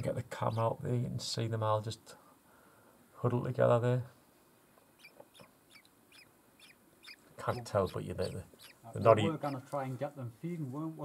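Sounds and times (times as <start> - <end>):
nestlings cheeping: 4.9 - 9.8.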